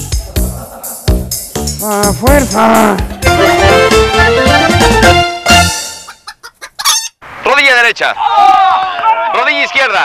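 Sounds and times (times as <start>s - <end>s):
cartoon chicken clucking: 5.9s - 7.2s.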